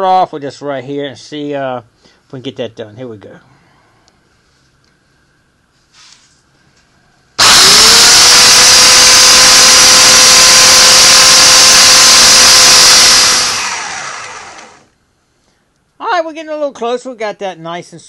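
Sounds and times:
belt sander running: 7.4s - 14.9s.

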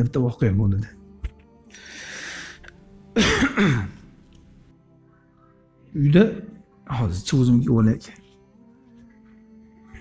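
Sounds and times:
hissing breath: 1.7s - 2.7s
man clearing his throat: 3.2s - 4.0s.

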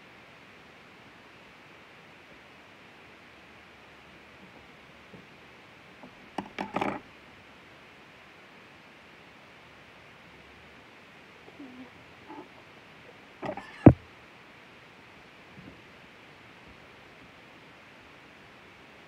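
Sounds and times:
faint steady hiss: 0.0s - 19.0s.

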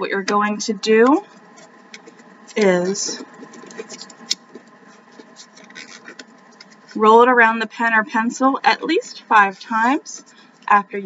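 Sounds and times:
paper rustling and crinkling: 1.2s - 7.0s.

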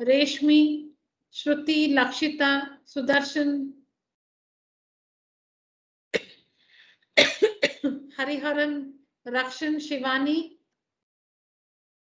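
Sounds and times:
woman coughing: 7.2s - 8.0s.

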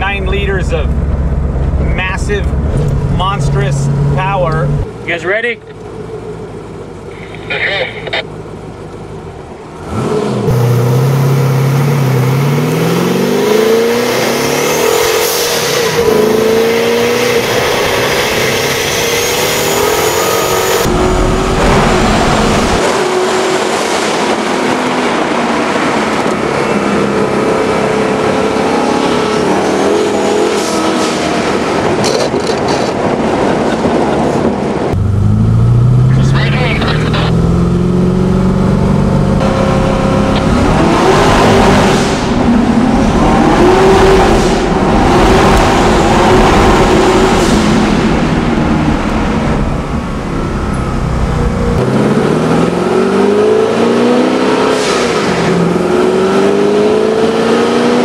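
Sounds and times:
car engine under heavy throttle: 0.0s - 58.0s.

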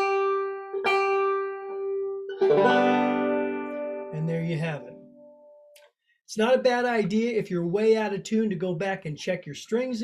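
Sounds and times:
banjo chord ringing: 0.0s - 5.7s
banjo string plucked: 0.0s - 5.8s.

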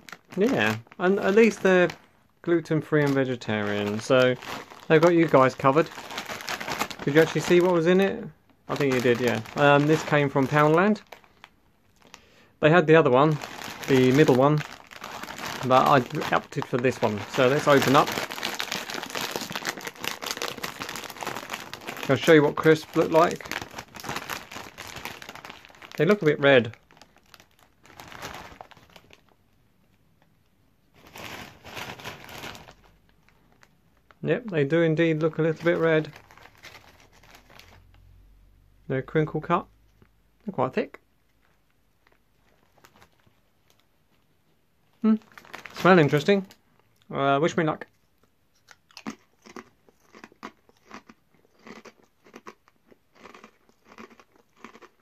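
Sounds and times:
crisp packet crinkling: 0.0s - 29.4s, 30.9s - 38.2s, 41.3s - 44.2s, 44.9s - 46.6s, 48.6s - 55.0s
crunchy crisp being chewed: 47.9s - 55.0s.

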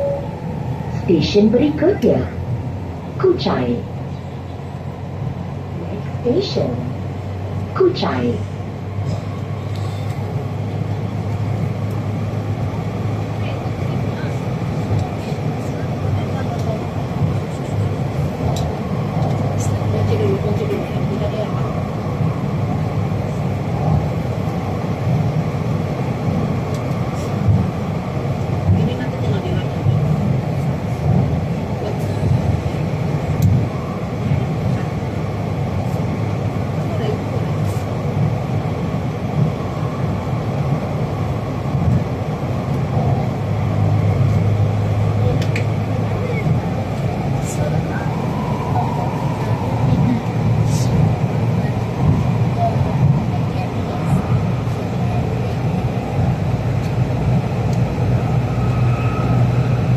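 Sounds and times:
train wheels rumbling on rail: 0.0s - 59.9s.

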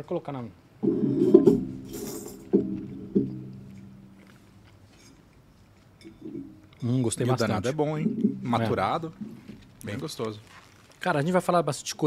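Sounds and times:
low ringing notes: 0.8s - 4.6s, 6.0s - 9.9s.

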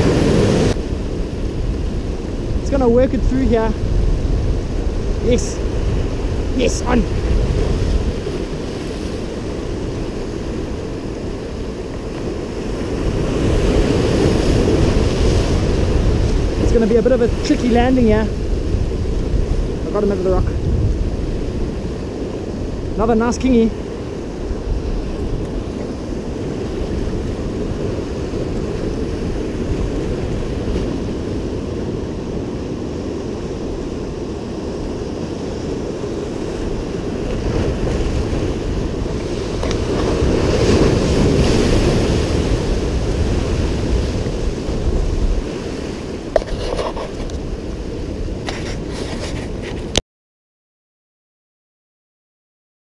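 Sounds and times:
ocean surf washing over rocks: 0.0s - 50.0s.

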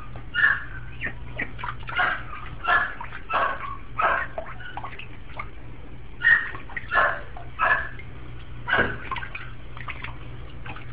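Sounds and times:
steady low hum: 0.0s - 10.9s
duckling harsh calls: 0.3s - 4.9s.

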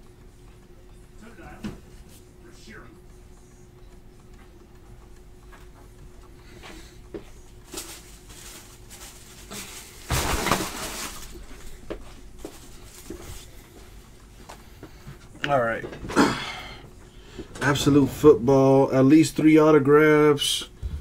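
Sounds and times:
packaging rustling: 7.6s - 13.4s.

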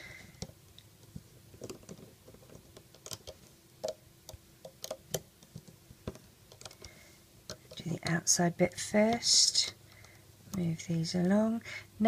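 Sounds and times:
crochet hook tapping plastic pegs: 0.4s - 6.9s.

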